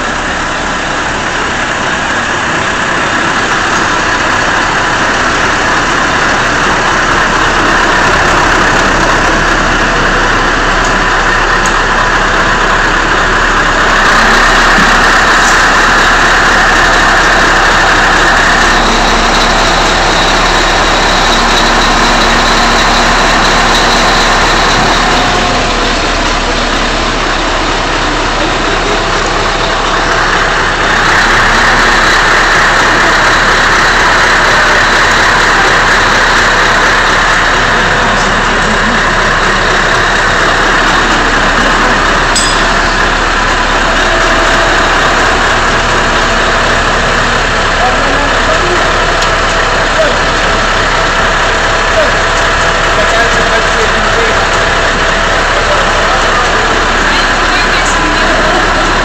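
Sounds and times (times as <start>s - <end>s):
crane engine running: 0.0s - 59.0s.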